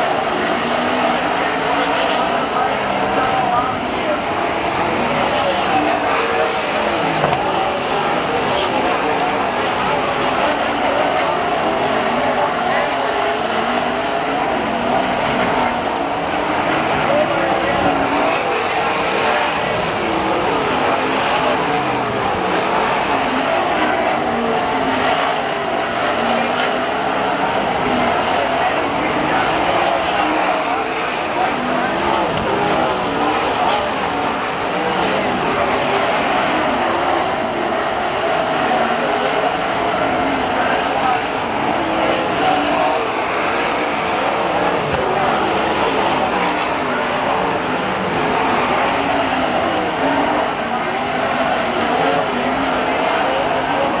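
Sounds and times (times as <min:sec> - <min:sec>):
race car engines roaring past: 0:00.0 - 0:54.0.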